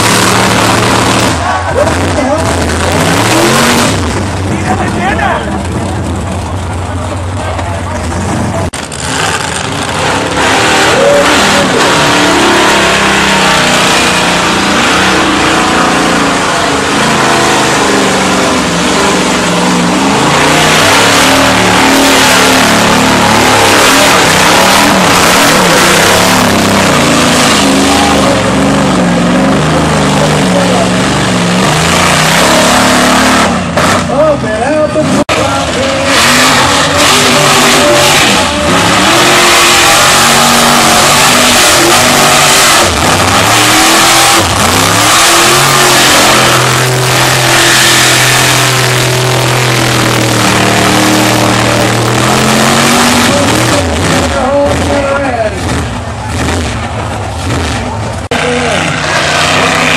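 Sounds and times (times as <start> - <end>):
truck engines revving hard: 0.0 - 59.9.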